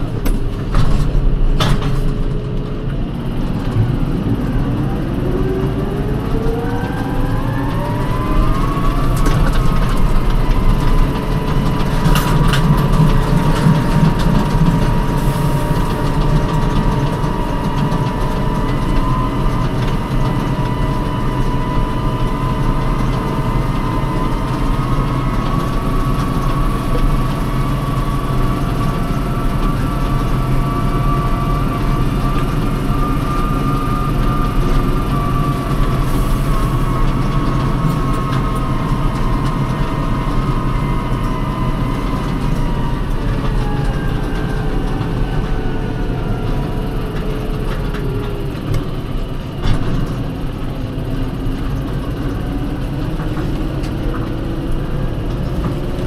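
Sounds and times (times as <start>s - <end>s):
tractor engine drone: 0.0s - 56.0s.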